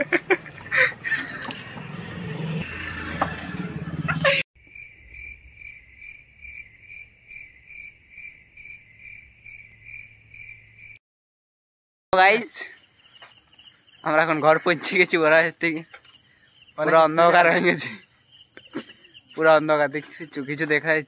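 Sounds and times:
street noise: 0.0 - 4.4
cricket chirping: 4.6 - 11.0, 12.2 - 21.0.

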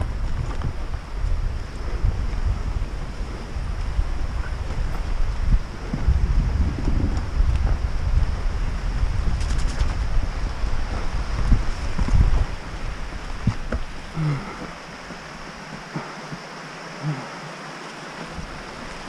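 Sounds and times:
wind buffeting microphone: 0.0 - 16.4
bike knocks and rattles: 9.2 - 14.0.

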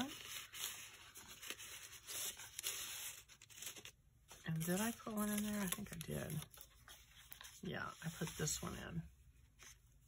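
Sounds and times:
paper rustling and scraping: 0.0 - 10.0.

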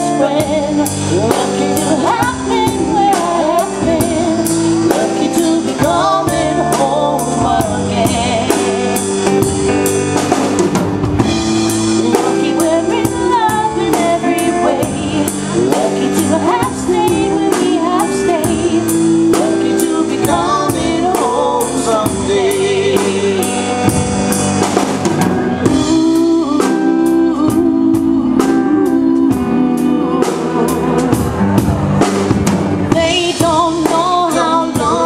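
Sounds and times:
drum kit steady beat: 0.0 - 35.0
electric guitar: 0.0 - 35.0.

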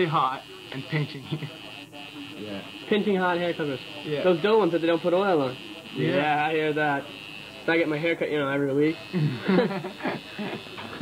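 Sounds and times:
men talking indistinctly: 0.0 - 9.4.

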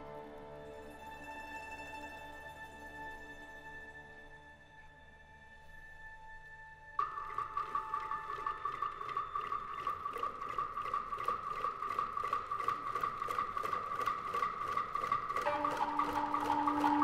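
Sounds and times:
orchestra high tremolo note: 15.4 - 17.0.

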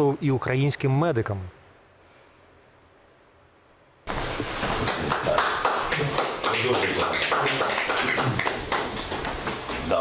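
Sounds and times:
sharp taps or claps: 4.6 - 9.8
men talking: 4.8 - 10.0.

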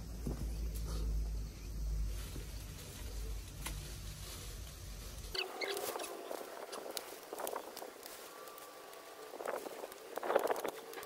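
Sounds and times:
low wind rumble: 0.0 - 11.0
shrub leaves rustling: 0.0 - 11.0
faint high chirps: 5.3 - 6.8.

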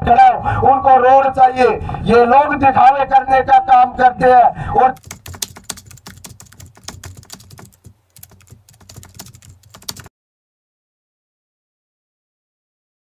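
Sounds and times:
keyboard key clicks: 5.0 - 10.1.

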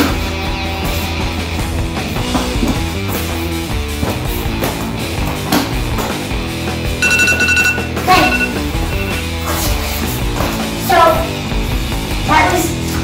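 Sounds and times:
rock music: 0.0 - 12.9
electronic timer beeping: 7.0 - 9.3.

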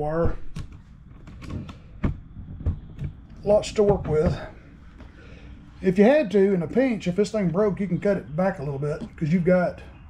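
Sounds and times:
light handling clicks and knocks: 0.2 - 5.2.

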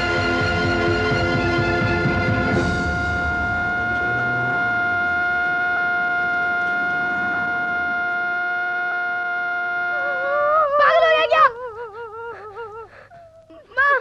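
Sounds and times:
long steady horn tone: 0.0 - 13.4
low rumble: 2.0 - 10.7.

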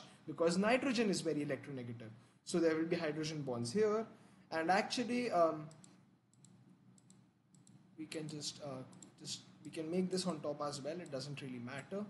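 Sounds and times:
faint computer mouse clicks: 5.7 - 7.8, 8.9 - 9.2.

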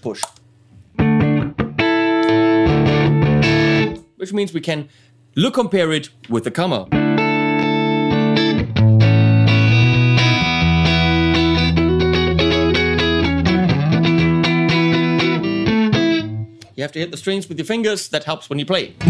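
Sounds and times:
electric guitar ringing chords: 1.0 - 4.0, 6.9 - 16.6.

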